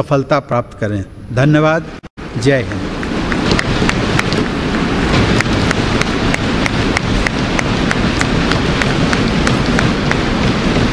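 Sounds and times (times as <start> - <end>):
audience applauding: 2.7 - 10.3.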